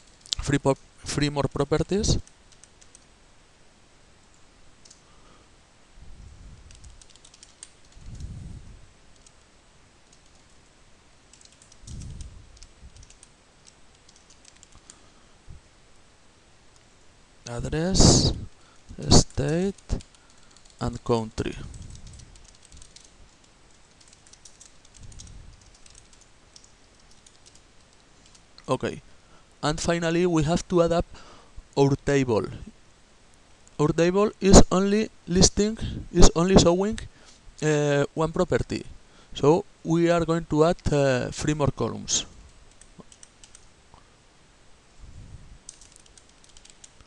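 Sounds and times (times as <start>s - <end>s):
computer keyboard clicks: 2.2s - 3.1s, 6.6s - 8.3s, 9.2s - 9.4s, 11.3s - 15.0s, 19.3s - 20.8s, 21.7s - 28.4s, 42.7s - 43.7s, 45.7s - 47.0s.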